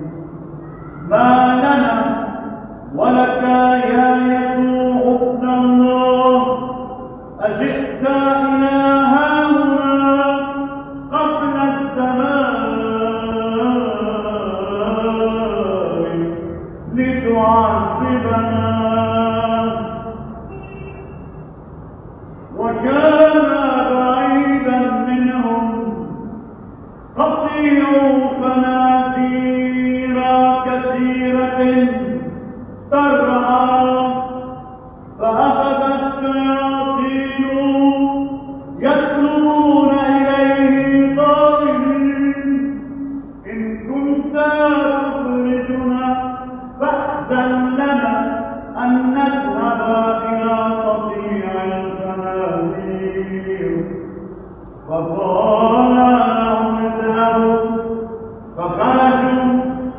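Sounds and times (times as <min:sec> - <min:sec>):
man chanting long notes: 0:00.0 - 0:21.1
man chanting: 0:00.0 - 0:21.2, 0:22.5 - 0:26.5, 0:27.1 - 0:59.9.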